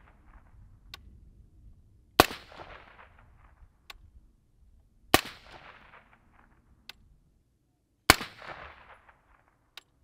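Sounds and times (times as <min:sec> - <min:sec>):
suppressed rifle shots with echo: 0:02.2 - 0:03.7, 0:05.1 - 0:06.7, 0:08.1 - 0:09.7.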